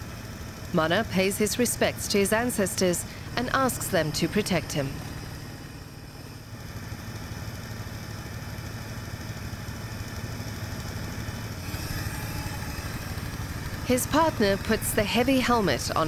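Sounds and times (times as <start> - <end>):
small boat engine idling: 0.0 - 16.0.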